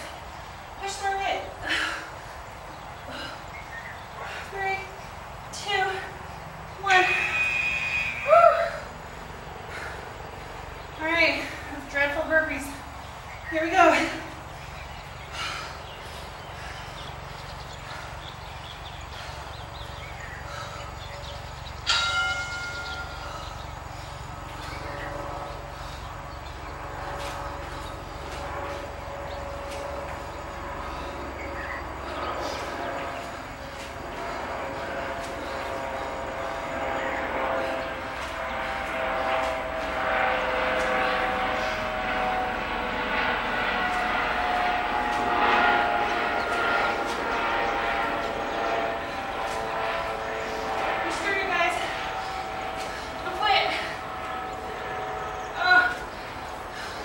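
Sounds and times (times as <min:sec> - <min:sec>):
distant engine drone: 0:00.0 - 0:57.0.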